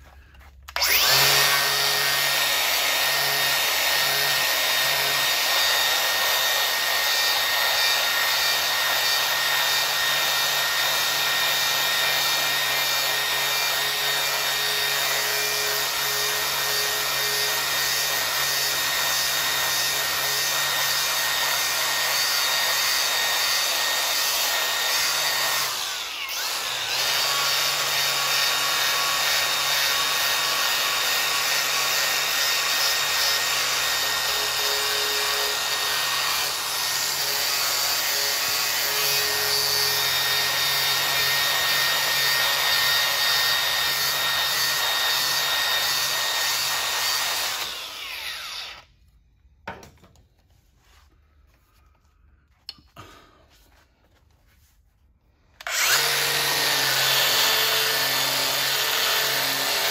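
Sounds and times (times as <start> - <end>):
drill spinning abrasive disc: 0.0 - 49.0, 55.5 - 59.9.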